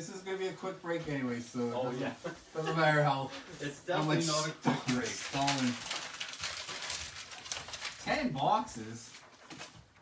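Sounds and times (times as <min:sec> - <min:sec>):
card packaging rustling: 0:04.0 - 0:10.0.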